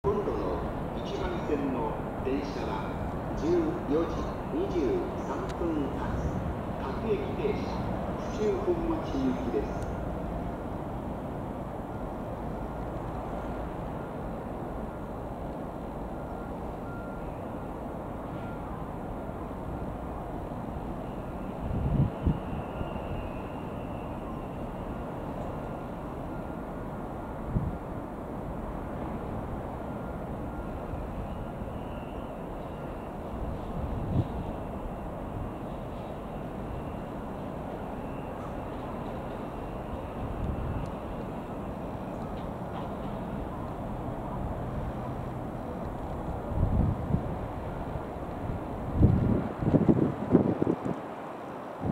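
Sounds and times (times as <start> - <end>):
train rumbling: 0.0 - 51.9.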